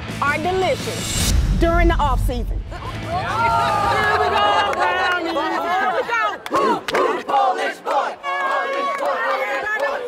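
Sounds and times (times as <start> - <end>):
crowd whooping and shouting: 2.7 - 6.9.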